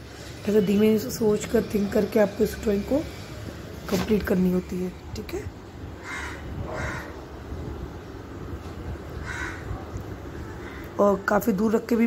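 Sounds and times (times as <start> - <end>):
harsh bird calls: 6.0 - 7.5, 9.1 - 11.0.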